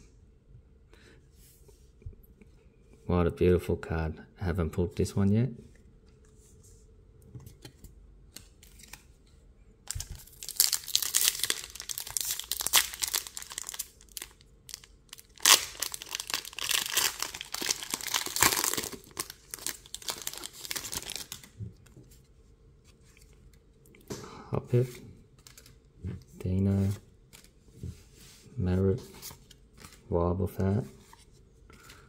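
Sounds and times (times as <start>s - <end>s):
foil wrapper tearing: 9.9s - 21.5s
plastic foil wrapper crinkling: 9.9s - 21.6s.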